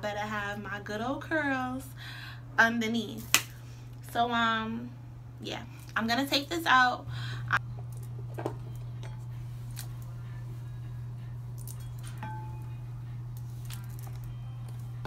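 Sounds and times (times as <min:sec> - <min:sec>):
steady low hum: 0:00.0 - 0:15.0
hair being brushed and handled: 0:13.4 - 0:15.0.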